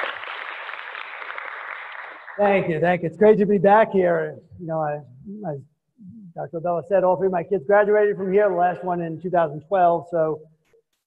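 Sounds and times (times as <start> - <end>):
audience applauding: 0.0 - 2.7.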